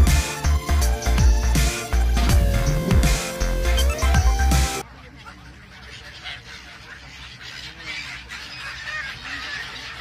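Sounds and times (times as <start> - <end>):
gulls calling harshly: 0.0 - 10.0
background hubbub: 3.8 - 10.0.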